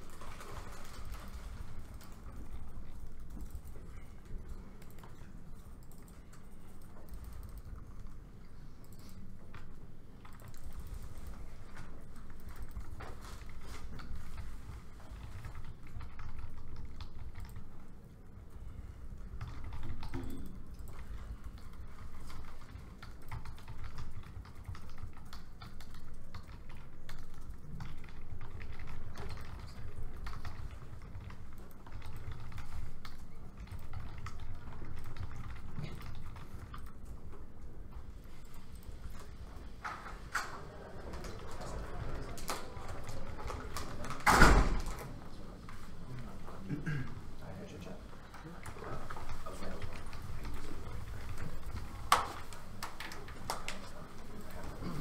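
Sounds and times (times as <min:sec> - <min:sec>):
low room rumble: 0:00.0 - 0:55.0.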